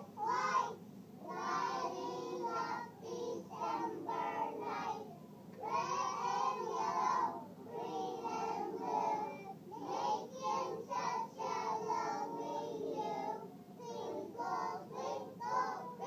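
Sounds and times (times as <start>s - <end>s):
children singing: 0.0s - 16.0s.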